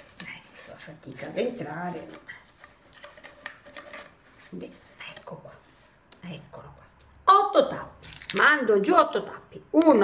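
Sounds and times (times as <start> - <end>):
paper and cardboard rustling: 0.0 - 6.4.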